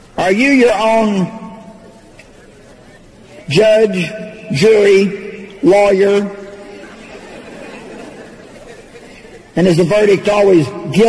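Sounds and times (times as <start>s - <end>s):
faint murmur of voices: 1.7s - 3.5s.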